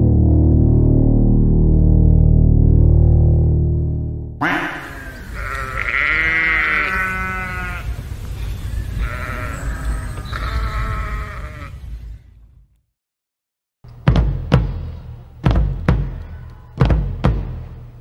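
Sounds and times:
droning synth music: 0.0 - 5.4
sheep bleating: 4.4 - 8.0, 9.0 - 11.8.

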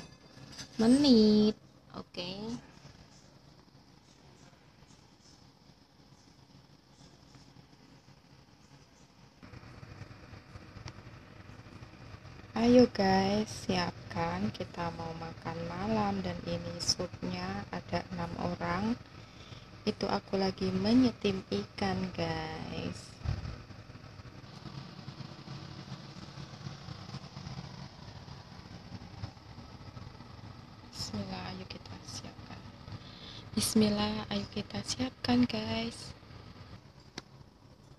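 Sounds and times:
kitchen appliance fan hum: 0.0 - 37.9.

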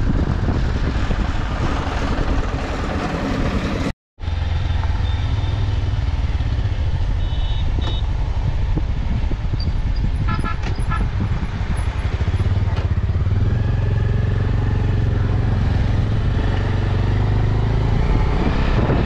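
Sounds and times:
motorcycle engine rumbling: 0.0 - 19.0.

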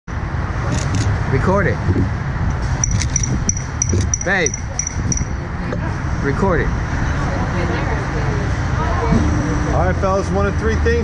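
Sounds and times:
low outdoor rumble: 0.1 - 11.0
short high-pitched beeps: 2.8 - 5.4.

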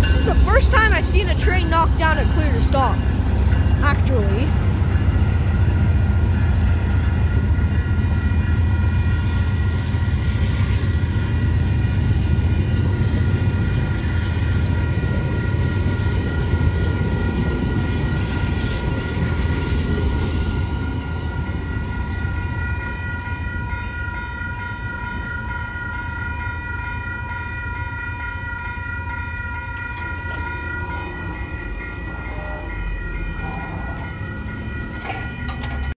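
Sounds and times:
diesel train rumbling by: 0.0 - 36.0
level-crossing warning bells: 0.0 - 36.0.

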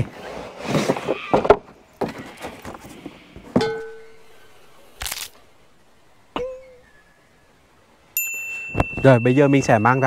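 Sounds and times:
notification bell ding: 8.2 - 10.0.

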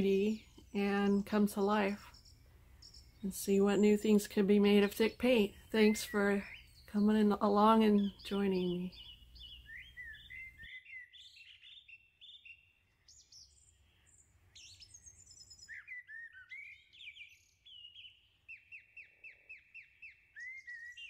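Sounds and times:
songbirds chirping and singing: 0.0 - 21.0.

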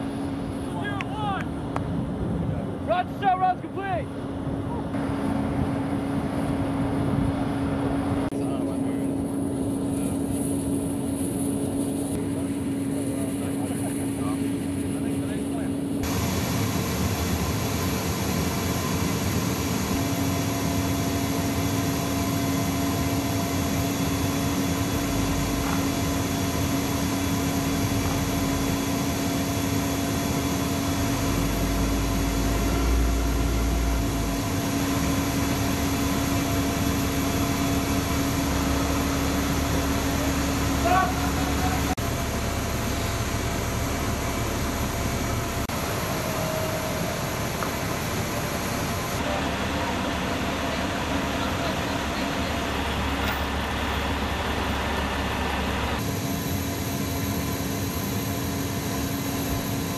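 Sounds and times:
jet engines running: 0.0 - 59.9.

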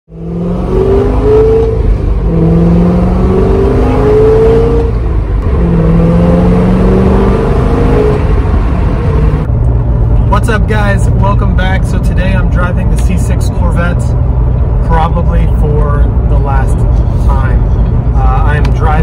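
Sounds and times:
road and wind noise: 0.1 - 19.0.

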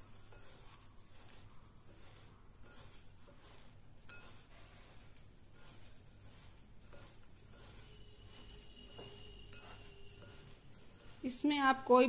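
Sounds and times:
seeds rustling stirred by hand: 0.0 - 12.0.

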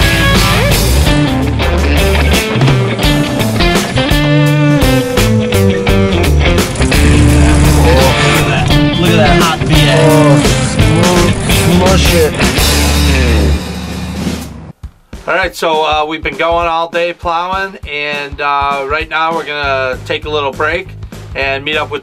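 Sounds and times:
rock music: 0.0 - 22.0.

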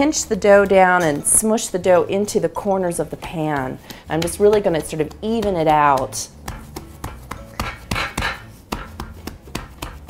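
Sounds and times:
hands pressing bread dough: 0.0 - 10.0
metal pan knocking on wooden board: 4.1 - 10.0.

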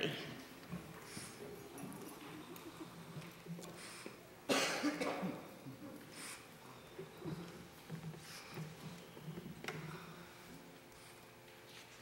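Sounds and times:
loud cough: 4.5 - 5.5.

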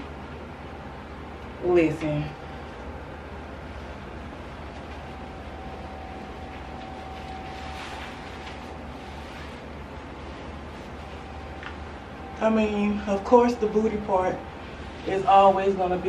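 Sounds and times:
low room hum: 0.0 - 16.0
faint rustling: 3.8 - 12.0.

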